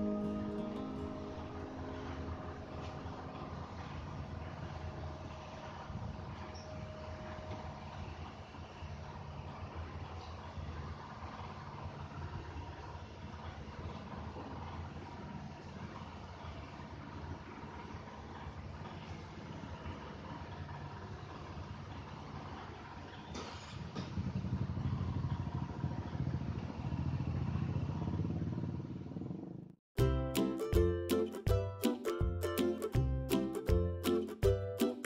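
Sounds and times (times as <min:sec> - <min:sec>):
music with plucked notes: 0:00.0 - 0:03.9, 0:30.0 - 0:35.0
vehicle engine running: 0:00.0 - 0:35.0.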